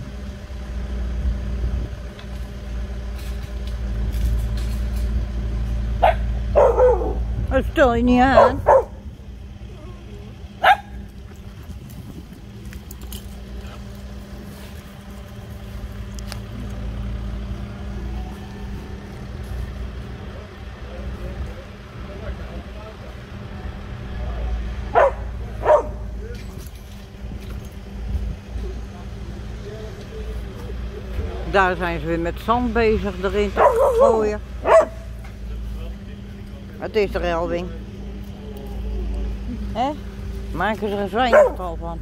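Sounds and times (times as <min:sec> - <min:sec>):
diesel machinery drone: 0:00.0 - 0:42.0
dog barks: 0:06.0 - 0:07.3, 0:08.3 - 0:09.0, 0:10.6 - 0:11.0, 0:24.9 - 0:26.1, 0:33.6 - 0:35.2, 0:41.2 - 0:41.7.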